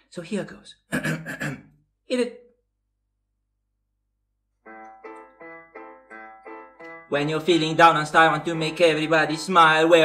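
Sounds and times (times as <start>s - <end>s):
piano-toned keyboard notes: 4.6s - 10.0s.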